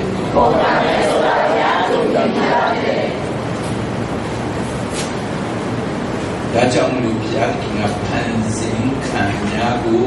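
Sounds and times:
steady rushing background noise: 0.0 - 10.0.

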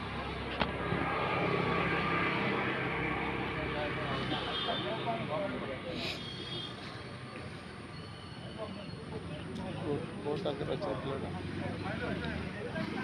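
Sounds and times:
steady engine drone: 0.0 - 8.0.

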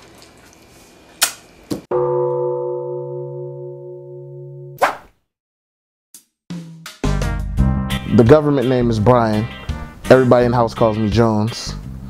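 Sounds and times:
gong-like chime ringing: 1.9 - 4.8.

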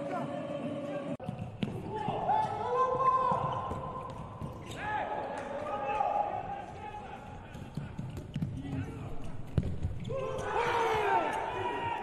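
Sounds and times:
ball bouncing on court floor: 1.2 - 4.8, 7.6 - 10.2.

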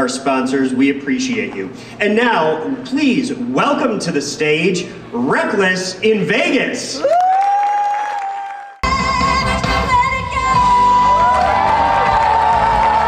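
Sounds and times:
person whooping: 7.0 - 8.8
live band music: 8.8 - 11.1.

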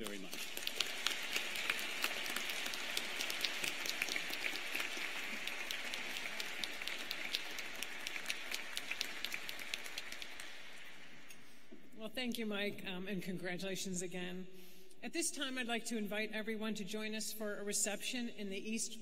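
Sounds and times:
audience applauding: 0.0 - 11.3.

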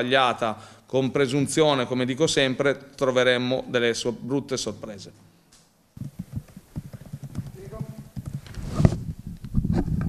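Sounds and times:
microphone handling knocks and clicks: 6.0 - 10.0.

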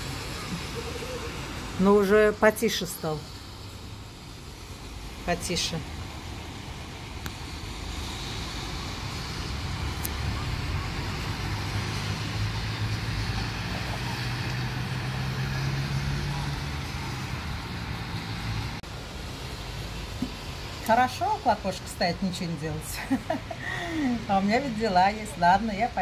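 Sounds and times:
light rain: 0.0 - 26.0
tyres hissing on wet road: 0.0 - 26.0
vehicle engine hum: 2.7 - 21.4.

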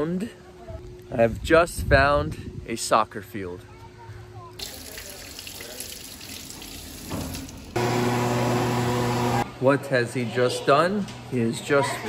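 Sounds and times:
tap water running over hands: 4.6 - 7.8
electric hand dryer humming: 7.3 - 9.5.

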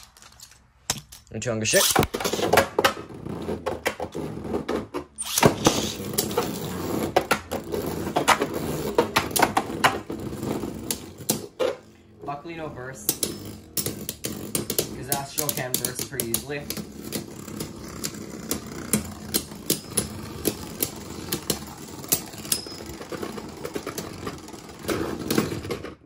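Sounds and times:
spinning tops launched: 1.7 - 2.6, 5.2 - 6.5
spinning tops clattering: 13.0 - 25.5.

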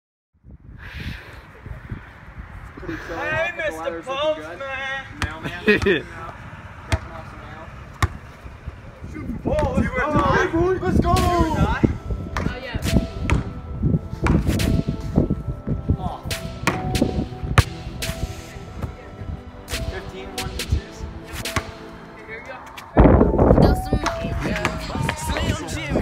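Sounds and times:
basketball bouncing on asphalt: 6.9 - 7.2, 7.9 - 8.4, 12.3 - 13.6, 14.2 - 14.7, 16.6 - 17.8
background music: 10.2 - 26.0.

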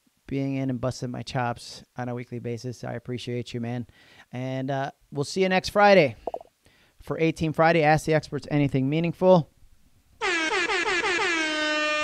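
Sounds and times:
air horn blast: 10.2 - 12.0.

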